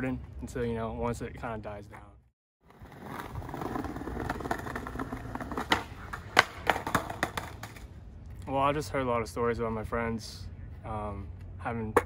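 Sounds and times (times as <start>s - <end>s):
skateboard wheels rolling on bricks: 2.6s - 7.9s.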